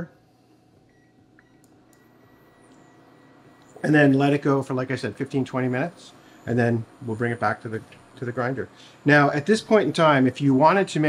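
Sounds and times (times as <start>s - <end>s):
induction burner high-pitched whine: 1.4s - 11.0s.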